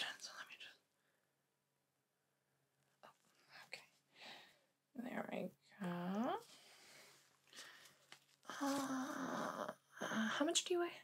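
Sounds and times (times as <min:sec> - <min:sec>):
person whispering: 0:00.0 - 0:00.9, 0:03.0 - 0:04.0, 0:08.5 - 0:11.0.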